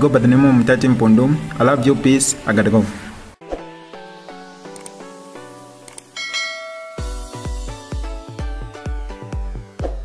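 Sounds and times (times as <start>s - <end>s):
bright bell chime: 6.2s - 7.9s
electronic music with bass kicks: 7.0s - 10.0s.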